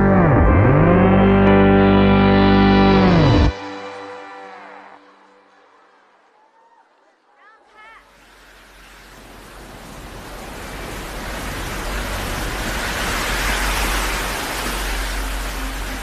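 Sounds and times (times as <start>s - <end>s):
low bass drone: 0.0s - 5.8s.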